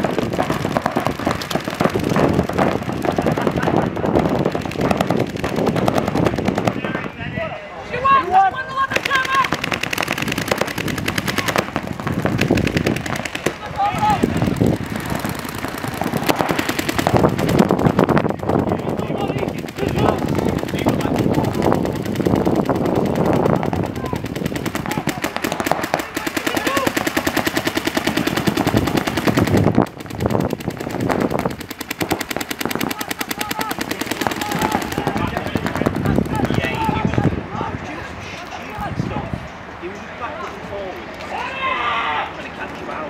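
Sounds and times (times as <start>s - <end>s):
paintball markers firing rapidly: 0.0s - 7.1s, 8.9s - 37.2s.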